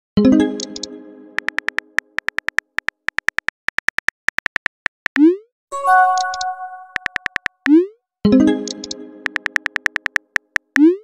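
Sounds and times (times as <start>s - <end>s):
phone keyboard typing clicks: 0.6s - 5.2s, 6.0s - 7.7s, 8.6s - 10.9s
message chime ringing: 5.7s - 7.4s.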